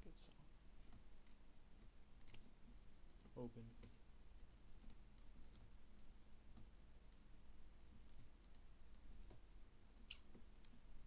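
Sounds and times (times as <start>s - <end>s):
faint computer mouse clicks: 2.2s - 2.5s, 8.1s - 9.4s.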